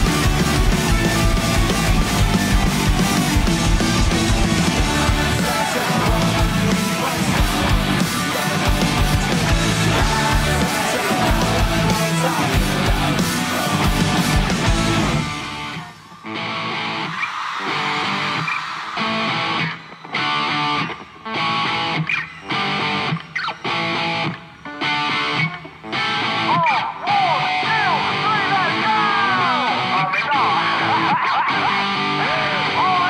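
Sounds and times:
rock band playing: 0.0s - 33.0s.

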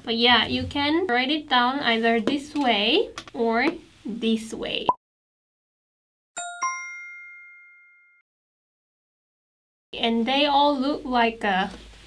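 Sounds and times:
two-note bell-like chime: 6.4s - 8.2s.

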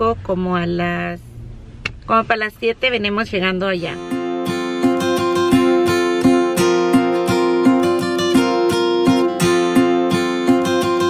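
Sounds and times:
acoustic guitar strumming: 3.6s - 11.0s.

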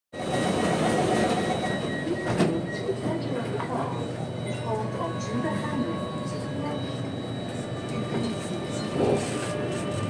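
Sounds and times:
train interior rumble: 0.3s - 10.0s.

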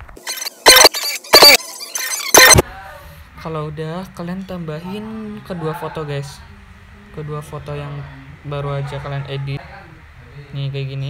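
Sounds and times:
chopped song bursts: 0.2s - 2.6s.

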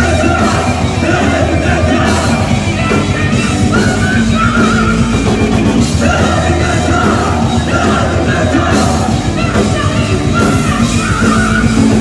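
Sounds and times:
man singing high shouted vocals: 0.0s - 5.3s, 6.0s - 12.0s
heavy metal band playing: 0.0s - 12.0s.

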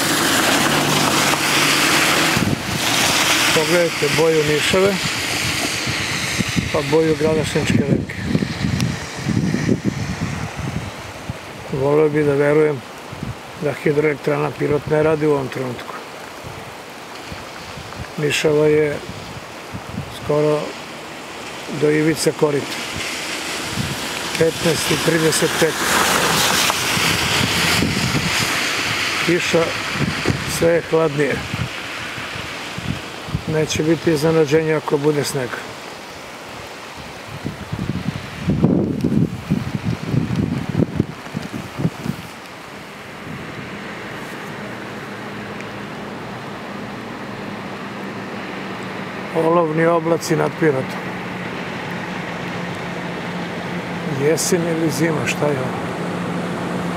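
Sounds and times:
wind buffeting microphone: 0.0s - 11.8s, 13.0s - 13.6s, 16.3s - 18.2s, 19.0s - 20.3s, 22.8s - 34.1s, 36.5s - 49.3s
river rushing: 0.0s - 56.9s
man speaking: 3.6s - 5.0s, 6.7s - 8.2s, 18.2s - 19.0s, 21.7s - 22.8s, 24.4s - 25.9s, 29.3s - 29.8s, 30.5s - 31.4s, 33.5s - 35.7s, 49.3s - 51.1s, 54.0s - 55.8s.

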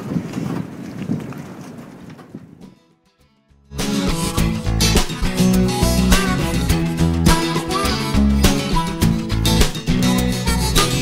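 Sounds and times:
wind buffeting microphone: 0.0s - 2.8s
rumbling harbour ambience: 0.0s - 2.9s
faint guitar music: 2.8s - 11.0s.

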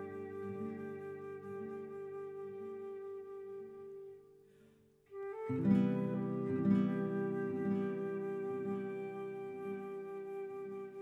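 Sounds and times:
flute long note: 0.0s - 4.2s, 5.1s - 11.0s.

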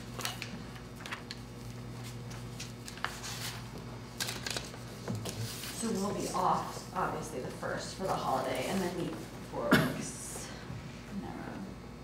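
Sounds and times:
paper rustling and shuffling: 0.0s - 6.9s, 8.0s - 9.3s
low room hum: 0.0s - 12.0s.

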